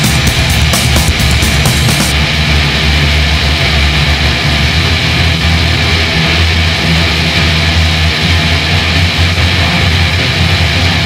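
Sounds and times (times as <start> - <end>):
distorted guitar and bass drone: 0.0 - 11.0.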